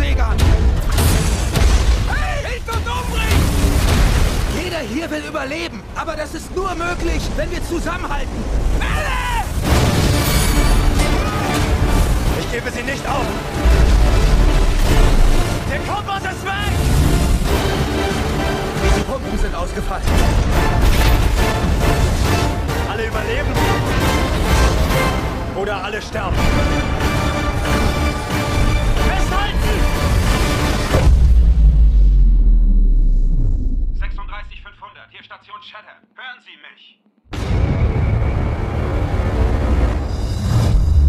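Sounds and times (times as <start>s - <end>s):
wave breaking: 6.8s - 19.1s
deep trailer boom rumble: 30.9s - 34.1s
man calling over radio: 34.1s - 37.0s.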